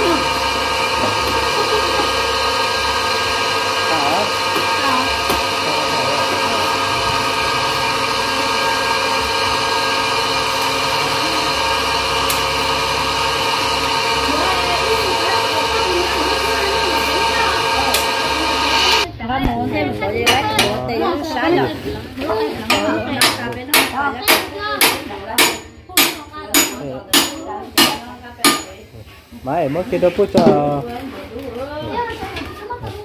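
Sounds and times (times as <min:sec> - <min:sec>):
electric grinder motor whine: 0:00.0 - 0:19.1.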